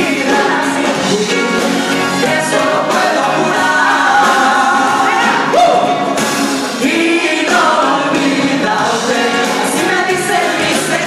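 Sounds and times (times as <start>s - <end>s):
drums: 0.0s - 11.0s
electric guitar: 0.0s - 11.0s
men singing together: 0.0s - 11.0s.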